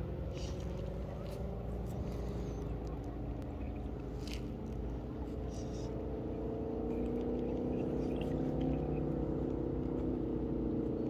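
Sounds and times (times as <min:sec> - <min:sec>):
distant engine hum: 0:00.0 - 0:11.0.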